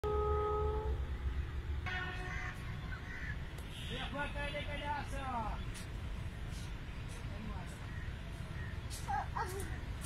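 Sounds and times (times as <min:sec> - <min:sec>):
multi-note train horn: 0:00.0 - 0:01.1, 0:01.8 - 0:02.7
train rumbling on track: 0:00.0 - 0:10.0.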